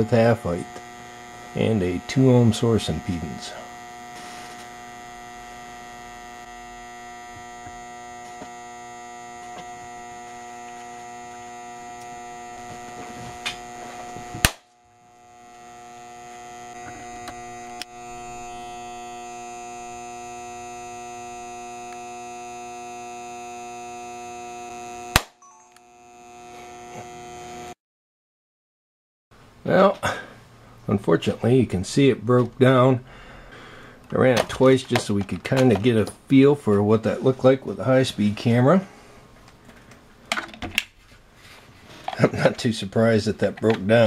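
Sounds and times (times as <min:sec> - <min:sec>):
generator humming with fixed tones: 0:00.0 - 0:27.8, 0:29.4 - 0:44.0
sharp electrical cracks: 0:14.3 - 0:14.8.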